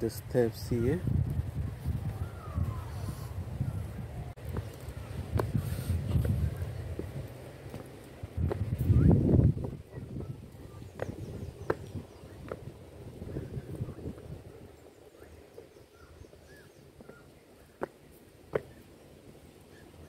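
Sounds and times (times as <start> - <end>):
low rumble on microphone: 0.7 - 17.2
footsteps on stone steps: 4.4 - 8.9, 10.9 - 13.2, 15.5 - 18.9.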